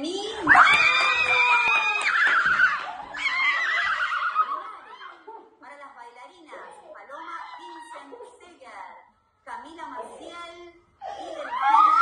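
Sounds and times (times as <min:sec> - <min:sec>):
young women shrieking: 0:00.4 - 0:05.3, 0:07.3 - 0:08.2, 0:11.0 - 0:12.0.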